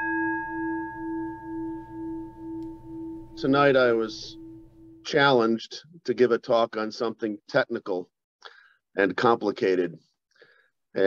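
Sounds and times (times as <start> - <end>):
singing bowl ringing: 0.0 - 5.1.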